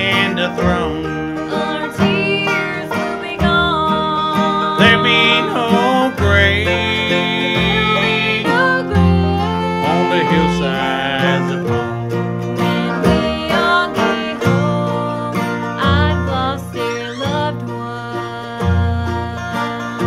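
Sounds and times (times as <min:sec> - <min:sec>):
bluegrass band playing: 0:00.0 - 0:20.0
voices singing: 0:00.0 - 0:20.0.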